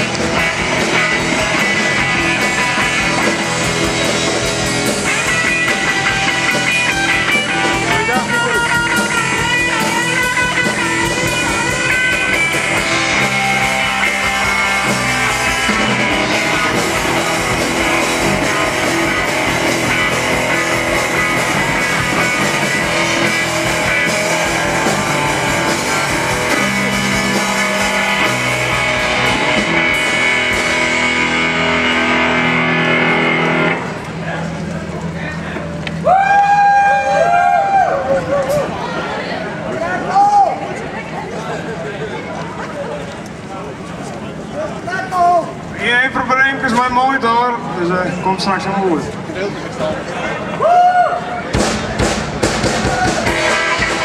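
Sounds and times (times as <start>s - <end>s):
drum kit: 0.0s - 34.2s, 51.5s - 54.0s
electric guitar: 0.0s - 39.8s, 51.8s - 54.0s
bass guitar: 0.0s - 40.1s, 51.4s - 54.0s.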